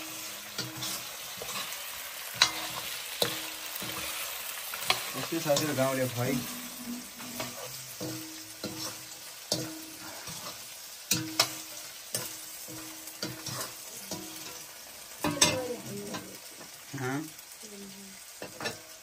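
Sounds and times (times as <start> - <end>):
food sizzling in oil: 0.0 - 19.0
metal ladle scraping iron wok: 0.1 - 4.2, 4.8 - 14.6.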